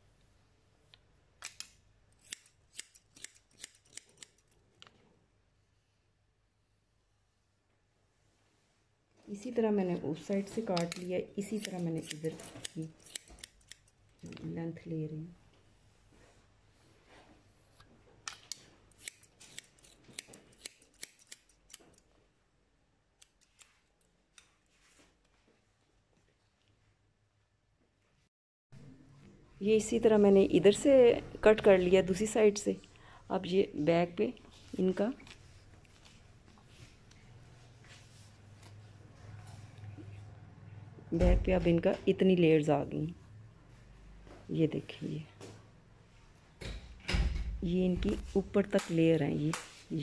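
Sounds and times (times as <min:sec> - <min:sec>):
scissors snipping hair: 0:01.4 - 0:04.6, 0:10.3 - 0:14.6, 0:18.3 - 0:22.1, 0:23.2 - 0:24.6.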